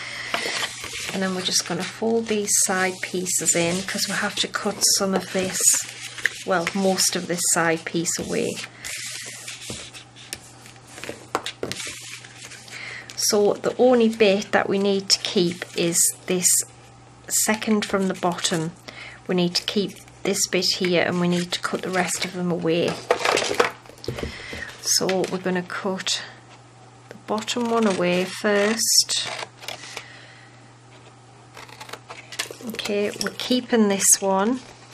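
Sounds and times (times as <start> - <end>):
cardstock rustling and sliding: 0.2 - 12.7.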